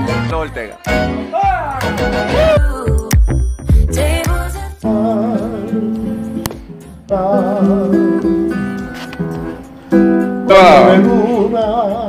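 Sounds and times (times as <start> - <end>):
person singing with vibrato: 0.0 - 9.0, 10.2 - 12.0
classical guitar playing: 4.9 - 11.5.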